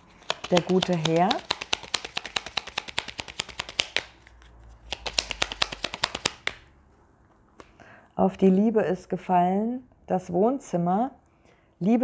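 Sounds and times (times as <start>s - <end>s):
cards being shuffled: 0.0s - 6.7s.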